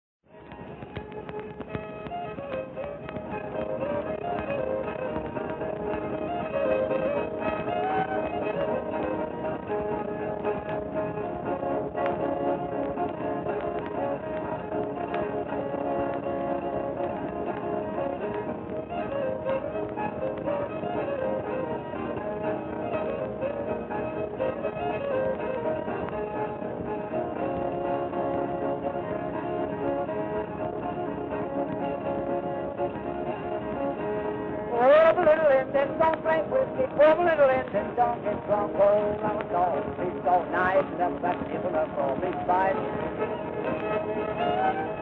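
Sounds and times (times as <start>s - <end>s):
fiddle playing fast dance tune: 0.3s - 45.0s
record surface crackle: 0.3s - 45.0s.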